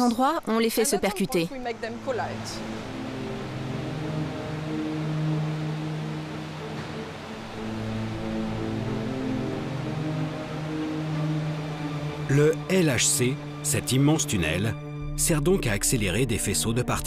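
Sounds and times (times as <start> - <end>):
slow low chords music: 2.0 - 17.0.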